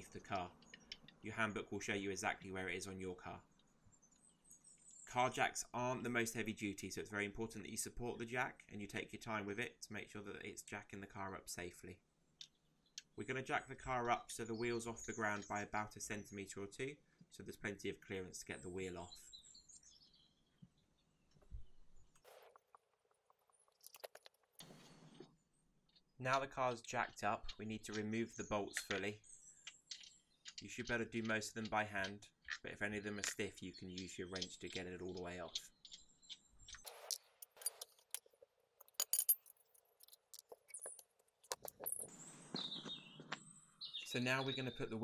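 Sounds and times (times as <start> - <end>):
birds chirping: 0.0 - 6.5, 11.8 - 17.5, 18.2 - 38.5, 40.0 - 45.0
metal bolts clinking: 36.7 - 42.1.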